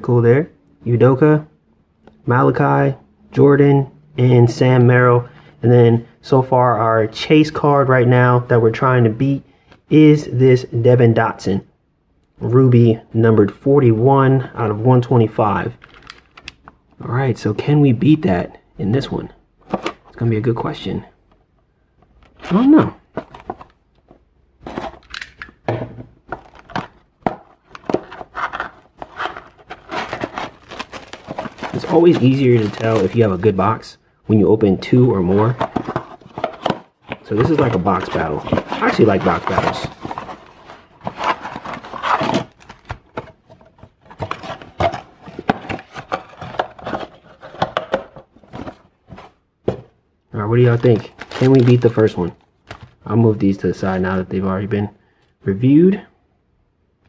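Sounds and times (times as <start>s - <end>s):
shrink wrap crinkling: 15.8s - 16.5s, 26.3s - 33.6s, 35.4s - 43.1s, 50.6s - 53.1s
cardboard box handled and opened: 22.2s - 25.0s, 26.3s - 33.4s, 35.2s - 49.9s, 50.8s - 52.9s.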